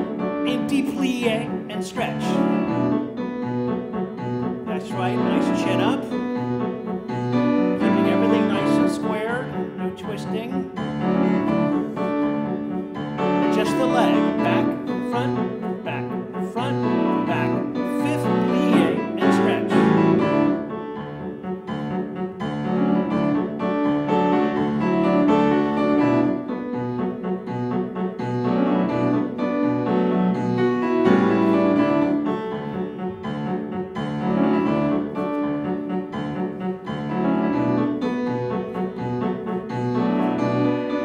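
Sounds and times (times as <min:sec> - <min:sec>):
grand piano classical tune: 0:00.0 - 0:41.0.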